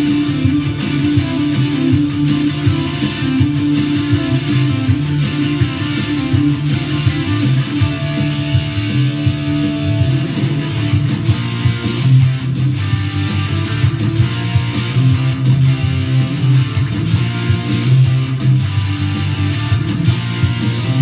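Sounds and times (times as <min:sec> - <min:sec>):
electric guitar: 0:00.0 - 0:21.0
rock band backing track: 0:00.0 - 0:21.0.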